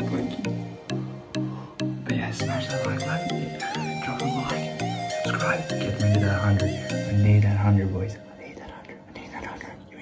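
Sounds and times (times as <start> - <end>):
person whispering: 8.2 - 10.0.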